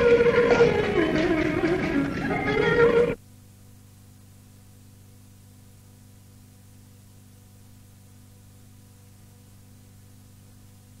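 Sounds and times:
melodic concert music: 0.0 - 3.2
recording hum and hiss: 0.0 - 11.0.

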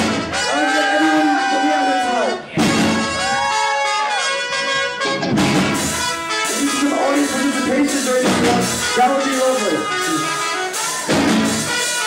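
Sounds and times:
drums: 0.0 - 12.0
trumpet-led horn section: 0.0 - 12.0
electric guitars: 4.5 - 12.0.

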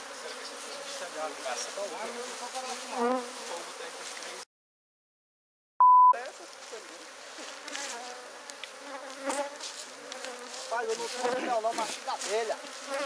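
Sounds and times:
honeybees buzzing: 0.0 - 4.4, 6.3 - 13.0
loud single-pitch beep: 5.8 - 6.2.

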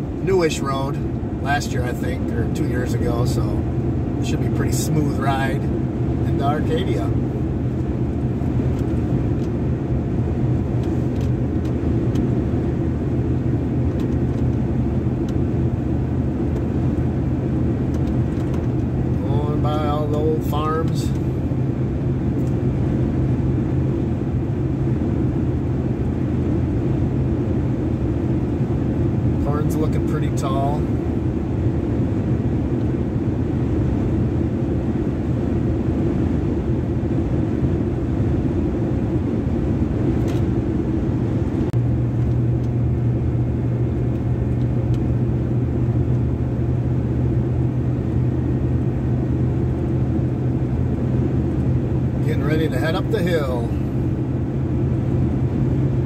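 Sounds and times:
road and engine noise in cab: 0.0 - 56.0.

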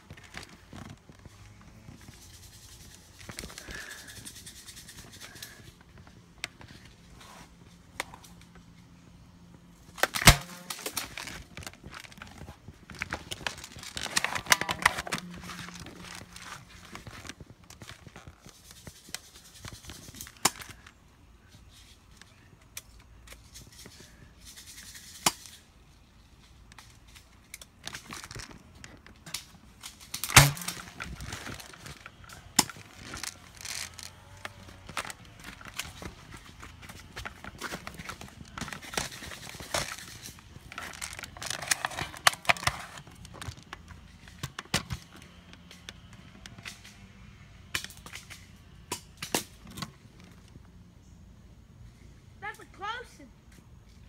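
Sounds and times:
camera handling rustle: 9.9 - 20.9, 26.7 - 47.0.

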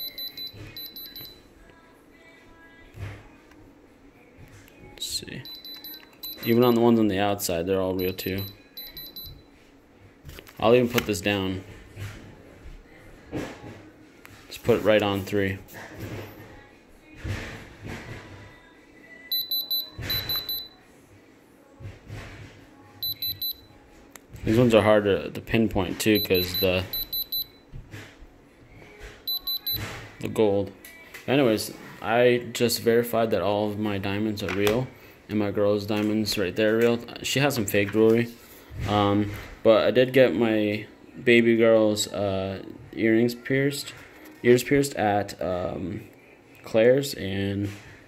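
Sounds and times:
diamond tester beeping rapidly: 0.0 - 1.4, 5.4 - 6.8, 8.0 - 9.4, 19.3 - 20.7, 23.0 - 23.7, 26.1 - 27.6, 29.3 - 29.8.

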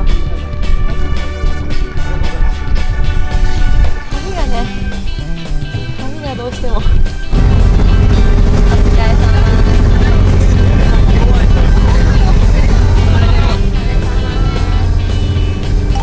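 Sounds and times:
background music: 0.0 - 16.0
vehicle engine rumble: 7.3 - 16.0
voices: 7.4 - 16.0.

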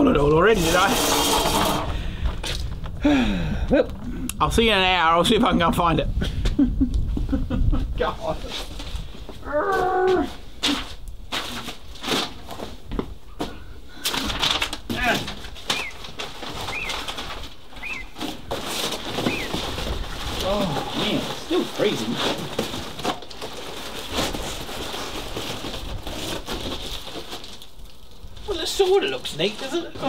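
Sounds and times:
foil insulation crinkling and rustling: 8.2 - 30.0
bird chirps: 15.7 - 16.0, 16.7 - 17.1, 17.8 - 18.2, 19.2 - 19.6.

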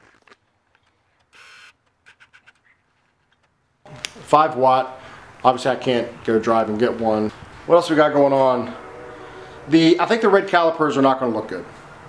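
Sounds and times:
faint breathy hiss: 4.8 - 5.4.

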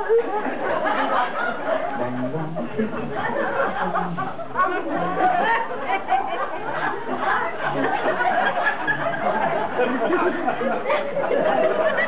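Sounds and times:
chatter in a large hall: 0.0 - 12.0.

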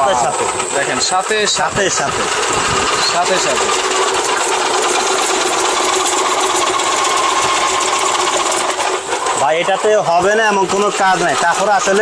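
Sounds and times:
juicer motor whirring: 0.0 - 12.0.

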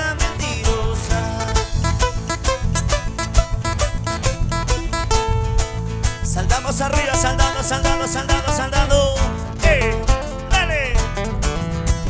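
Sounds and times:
heavy bass beat: 0.0 - 12.0
strummed guitar: 0.0 - 12.0.

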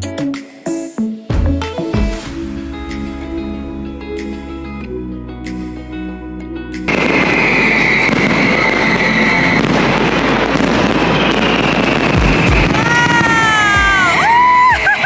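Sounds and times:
background music: 0.0 - 15.0
falling firework whistles: 6.9 - 15.0
fireworks crackling: 6.9 - 15.0.

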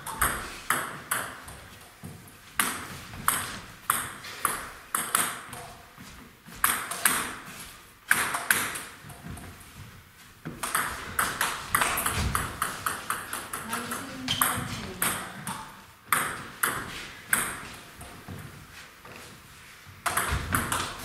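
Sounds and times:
table tennis ball knocking: 10.5 - 17.7, 20.0 - 21.0.

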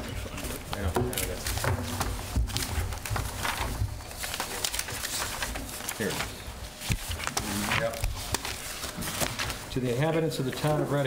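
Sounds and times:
paper rustling and shuffling: 0.0 - 11.0.

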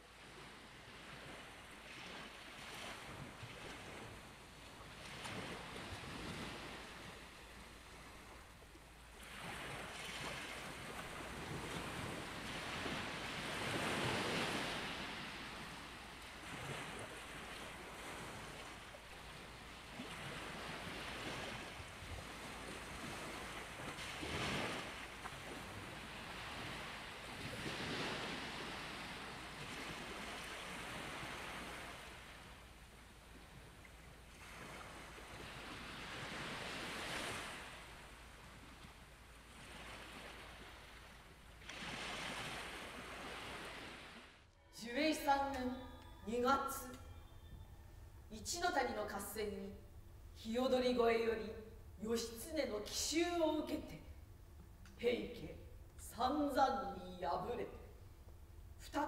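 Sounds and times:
ocean waves washing in: 0.0 - 46.8.

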